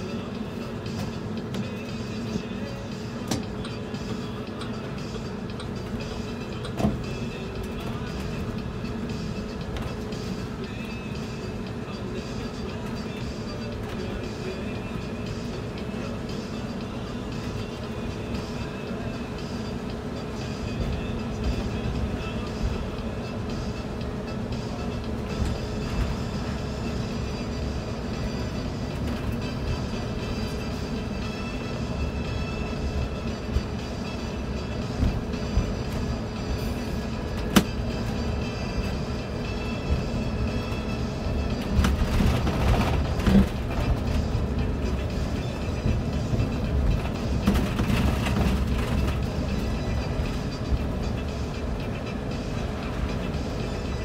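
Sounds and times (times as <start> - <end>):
bus engine and tyres rumbling: 0.0 - 54.0
steady whine: 0.0 - 54.0
rattles and knocks: 45.8 - 49.6.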